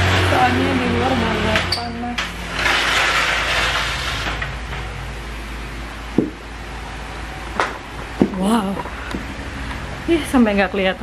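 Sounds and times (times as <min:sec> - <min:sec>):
door scraping and rattling: 0:00.0 - 0:05.4
sharp knocks: 0:06.1 - 0:06.4.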